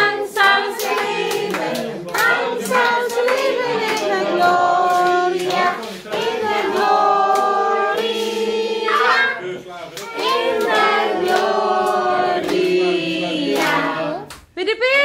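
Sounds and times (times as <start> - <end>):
group singing: 0.0 - 14.4
rhythmic hand clapping: 0.0 - 14.6.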